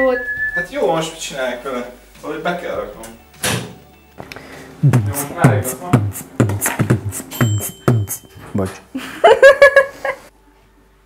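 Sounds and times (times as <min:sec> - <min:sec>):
background music with steady beat: 0:00.0 - 0:08.6.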